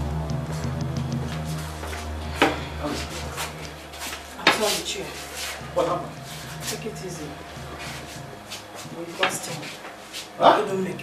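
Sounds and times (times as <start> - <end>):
low steady hum: 0.0 - 11.0
people speaking: 2.3 - 9.8, 10.4 - 11.0.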